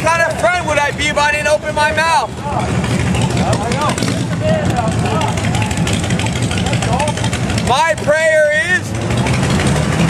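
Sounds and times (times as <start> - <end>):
people's voices: 0.0 - 10.0
vehicle engines rumbling: 0.0 - 10.0.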